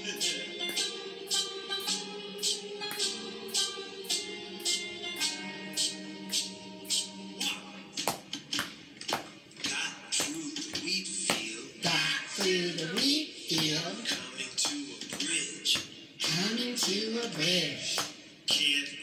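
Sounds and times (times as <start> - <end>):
person chanting and singing: 0.0 - 8.2, 9.6 - 19.0
hand claps beat: 0.7 - 1.4, 2.4 - 3.2, 8.0 - 18.8.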